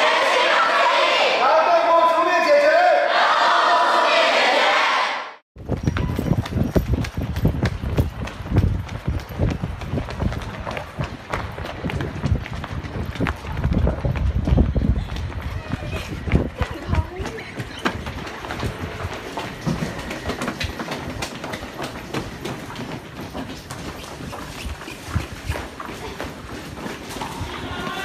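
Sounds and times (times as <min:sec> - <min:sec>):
crowd chanting in unison: 0:00.0 - 0:01.6, 0:02.7 - 0:05.4
footsteps of people running: 0:05.6 - 0:28.0.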